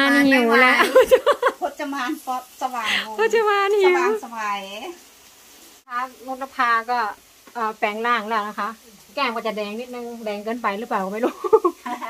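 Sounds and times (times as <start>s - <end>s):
woman speaking: 0.0s - 5.0s, 5.9s - 12.0s
meat sizzling on grill pan: 0.0s - 12.0s.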